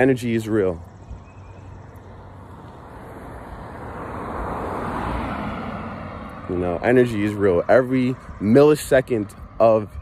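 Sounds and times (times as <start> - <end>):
road vehicle passing: 0.0 - 10.0.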